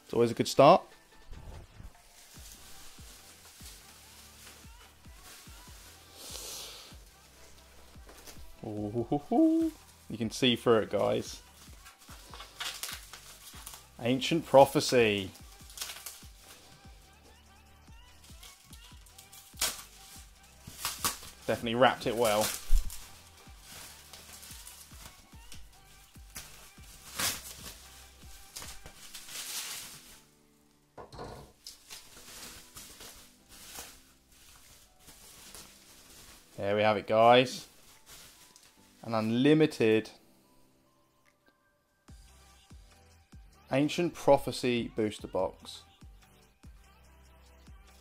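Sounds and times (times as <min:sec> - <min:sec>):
quiet background music: 0:00.0 - 0:48.0
bubble wrap crinkling: 0:00.5 - 0:30.8, 0:31.5 - 0:39.4.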